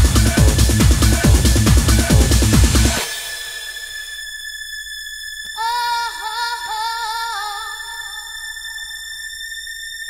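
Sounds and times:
high synth tone held steady: 3.0 - 10.0.

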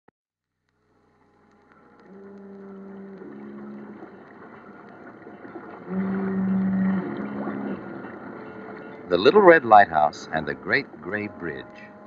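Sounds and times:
vinyl surface crackle: 0.5 - 6.0
rushing water: 1.6 - 12.0
low horn-like tone: 2.0 - 4.6, 5.8 - 12.0.

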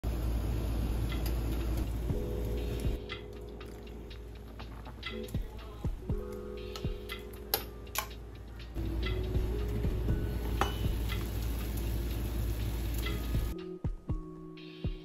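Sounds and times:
soft background music: 1.1 - 15.0.

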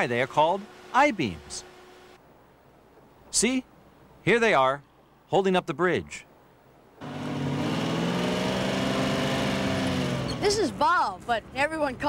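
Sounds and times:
crane engine running: 0.0 - 2.2.

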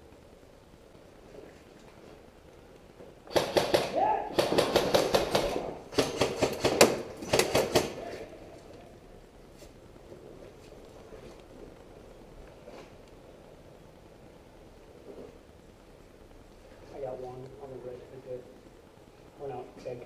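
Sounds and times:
airsoft rifle rapid fire: 3.3 - 8.1.

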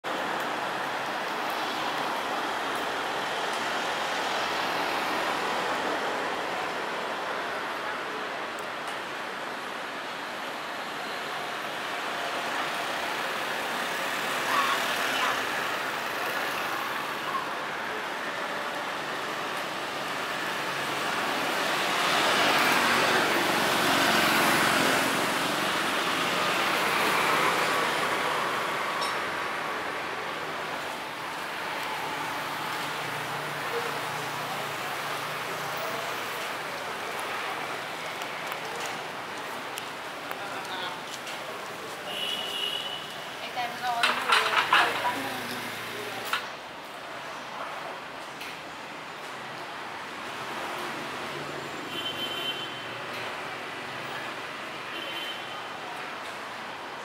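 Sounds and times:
cars passing: 0.0 - 55.0
motorbikes passing: 13.2 - 42.1, 43.3 - 46.3.

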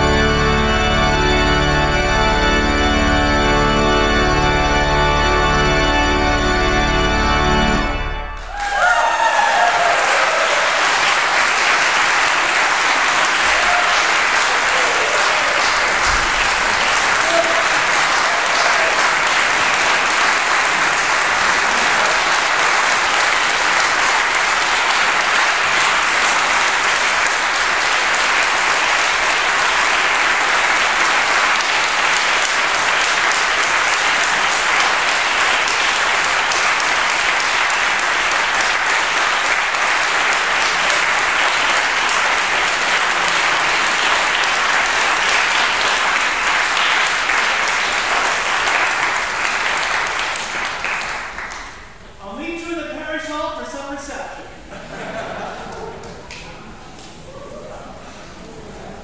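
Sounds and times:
audience applauding: 0.0 - 52.2, 54.8 - 57.8.

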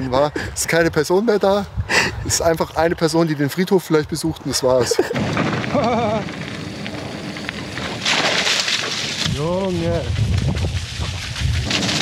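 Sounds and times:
wind buffeting microphone: 0.0 - 3.2, 8.9 - 12.0
person laughing: 4.7 - 6.4
bike tyre rumble on dirt: 5.1 - 12.0.

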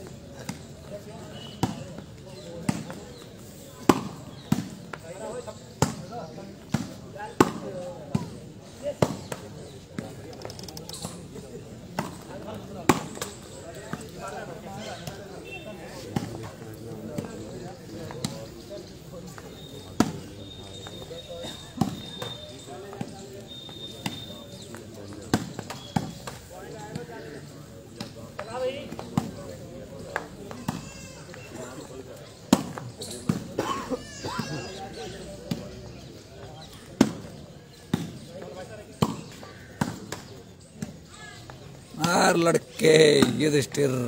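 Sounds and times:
crowd chattering: 0.0 - 44.0.

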